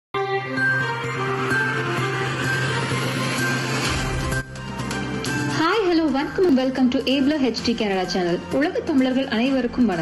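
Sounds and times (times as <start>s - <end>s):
low drone: 0.9s - 5.2s.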